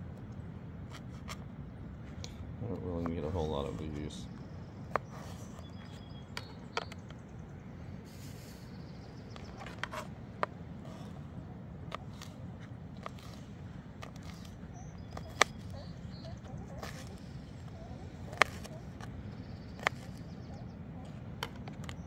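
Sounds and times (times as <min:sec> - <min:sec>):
steady low rumble: 0:00.0 - 0:22.0
knife chopping on plastic board: 0:14.0 - 0:15.9, 0:16.7 - 0:19.1, 0:19.7 - 0:20.3.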